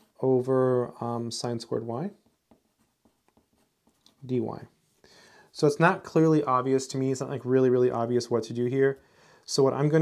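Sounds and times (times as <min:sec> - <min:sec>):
pencil writing on paper: 0:02.2 - 0:04.0.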